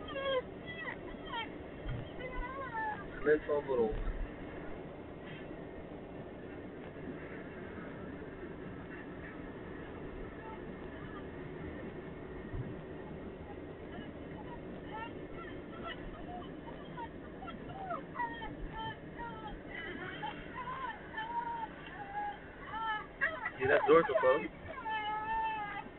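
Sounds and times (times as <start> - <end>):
car cabin road and engine noise: 0.0 - 25.9.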